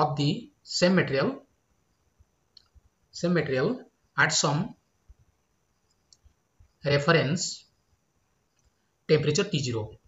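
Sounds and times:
man talking: 0.0s - 1.5s, 3.1s - 4.8s, 6.8s - 7.7s, 9.1s - 10.0s.

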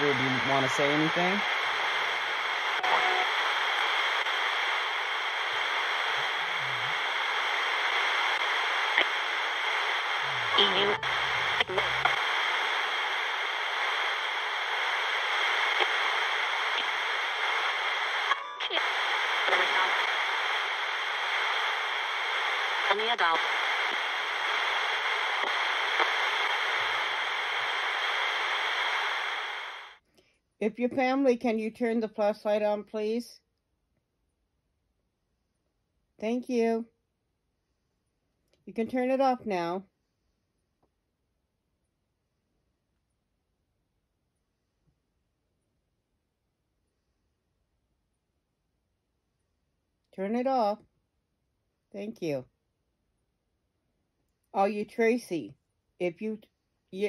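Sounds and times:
snatches of broadcast voice: 0.0s - 29.9s
radio static: 0.0s - 30.0s.

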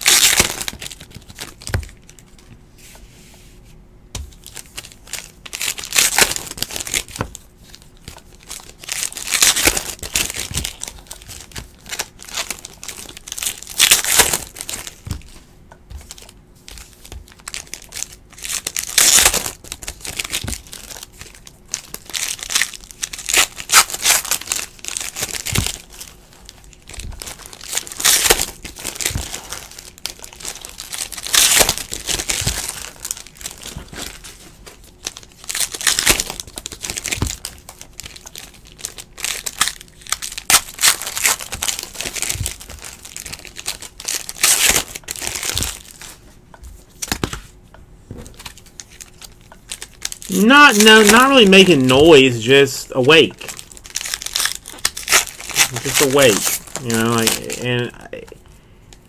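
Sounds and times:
cards shuffling and rustling: 4.2s - 58.4s.

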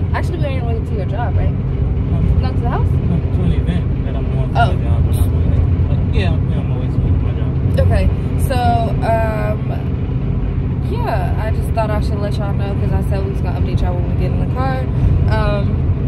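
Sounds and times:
car road and engine rumble: 0.0s - 16.0s
person talking: 7.8s - 9.8s.

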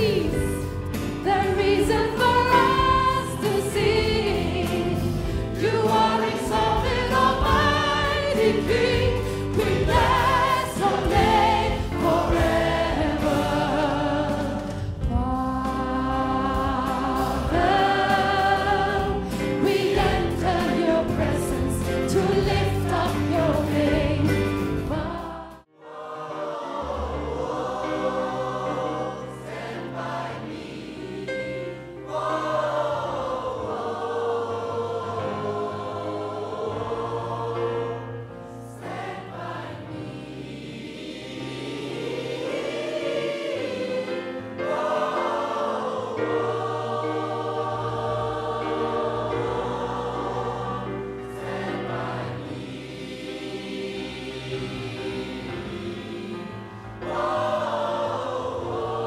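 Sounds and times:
gospel choir singing: 0.0s - 59.0s
keyboard accompaniment: 0.0s - 59.0s.

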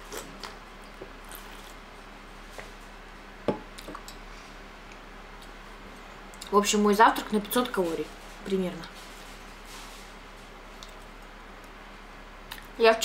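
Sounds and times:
eating and handling noises: 0.0s - 12.8s
low electrical hum: 0.0s - 13.0s.

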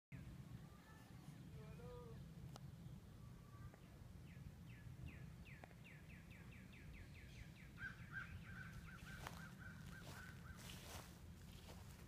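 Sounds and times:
low steady rumble: 0.2s - 12.0s
bird song whistled notes: 4.2s - 10.7s.

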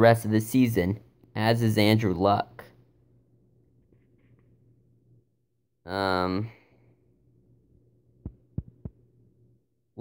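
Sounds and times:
faint low hum: 0.0s - 10.0s
soft low thumps: 8.2s - 9.1s.

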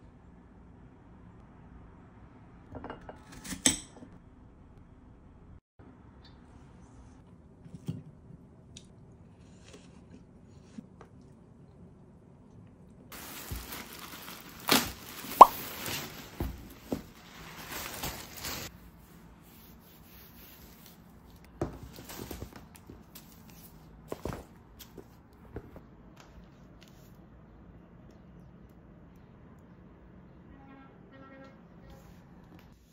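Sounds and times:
canvas bag rustling: 13.1s - 18.7s.

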